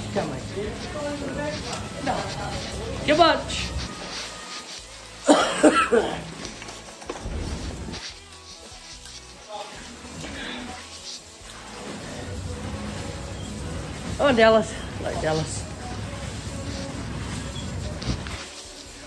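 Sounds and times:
quiet background music: 0:00.0 - 0:19.0
person coughing: 0:05.2 - 0:06.4.

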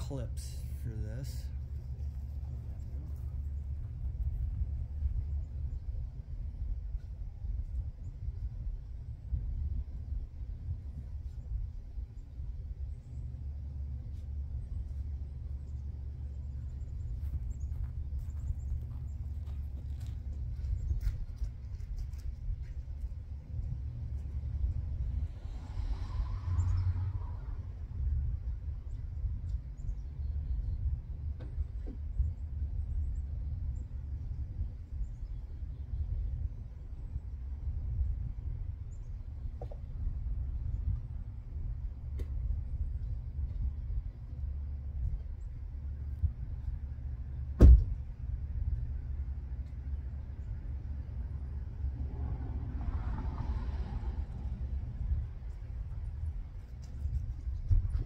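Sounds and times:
wind rumble on microphone: 0:00.0 - 0:58.0.

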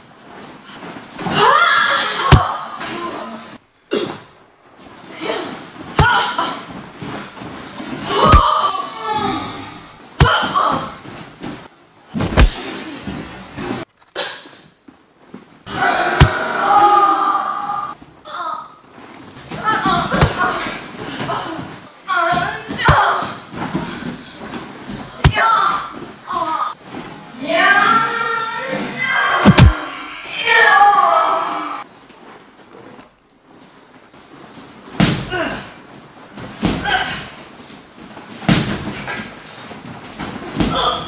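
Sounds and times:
punches slapping and thudding on body: 0:02.3 - 0:02.6, 0:08.1 - 0:08.7, 0:10.2 - 0:10.9, 0:12.2 - 0:13.0, 0:20.1 - 0:20.7, 0:22.7 - 0:23.6, 0:29.4 - 0:29.8.

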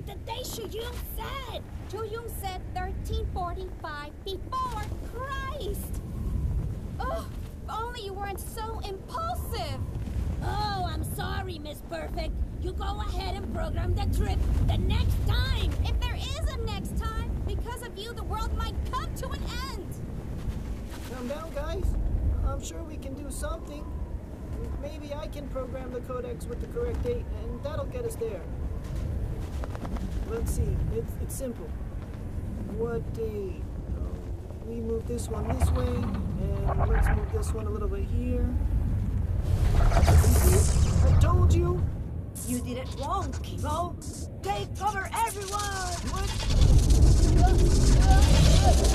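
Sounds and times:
deep rumble: 0:00.0 - 0:48.9
wordless vocal sounds: 0:35.0 - 0:38.2
scattered clicks: 0:42.7 - 0:48.9.

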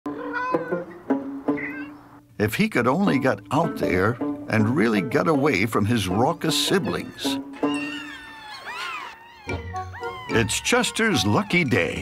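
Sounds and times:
background music with plucked guitar: 0:00.1 - 0:08.1
kitten meowing: 0:00.2 - 0:00.8, 0:01.6 - 0:02.0.

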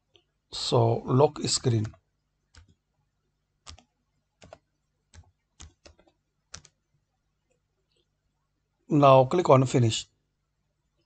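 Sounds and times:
keyboard keys clicking: 0:01.6 - 0:02.8, 0:03.6 - 0:06.8.

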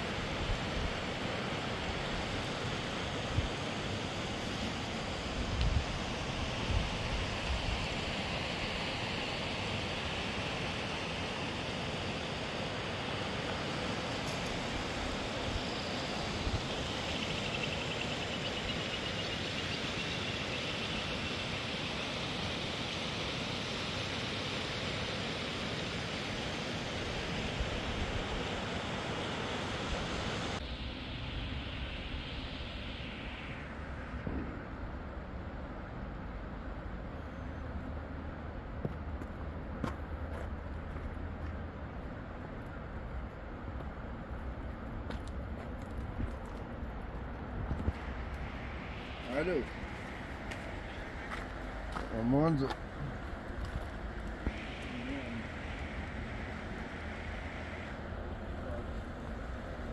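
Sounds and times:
wind: 0:00.0 - 0:59.9
footsteps on stony path: 0:38.8 - 0:41.6, 0:45.0 - 0:47.9, 0:50.0 - 0:54.4.

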